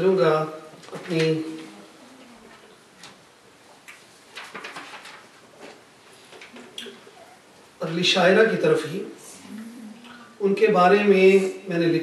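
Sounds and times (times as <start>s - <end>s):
paper crackling and flipping: 4.3s - 5.8s.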